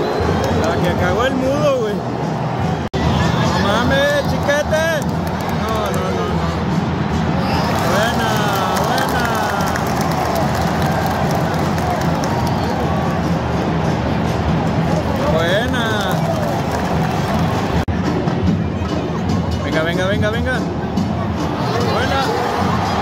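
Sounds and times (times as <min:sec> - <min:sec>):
stadium crowd din: 0:00.0 - 0:23.0.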